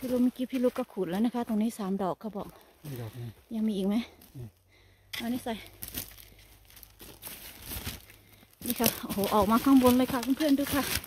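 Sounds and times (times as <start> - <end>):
woman speaking: 0.0 - 2.5, 3.5 - 4.2, 5.2 - 5.7, 8.6 - 11.0
crinkling of dry material: 0.0 - 4.5, 5.2 - 11.0.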